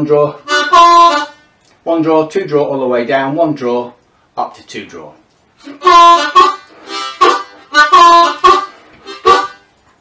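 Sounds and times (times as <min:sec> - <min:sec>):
blues harmonica riff: 0:00.1 - 0:01.6, 0:05.6 - 0:09.7.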